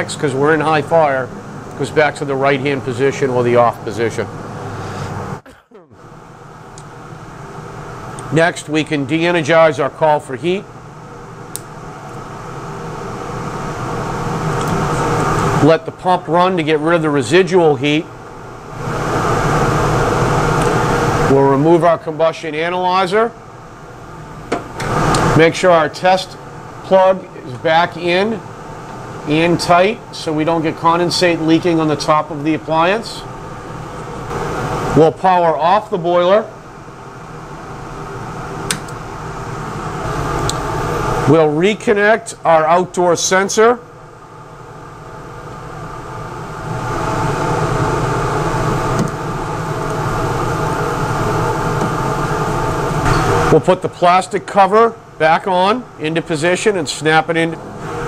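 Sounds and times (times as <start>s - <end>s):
gas boiler fan rushing: 0.0s - 58.0s
steady mechanical hum: 0.0s - 58.0s
sharp click: 38.7s - 39.0s.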